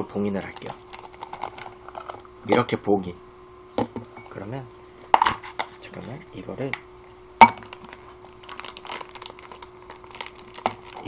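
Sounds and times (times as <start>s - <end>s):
plastic bag crinkling: 7.6s - 11.0s.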